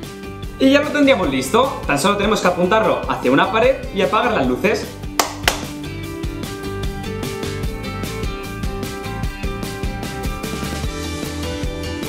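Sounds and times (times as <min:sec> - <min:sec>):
background music with held notes: 0:00.0 - 0:12.0
hand claps: 0:05.1 - 0:05.8.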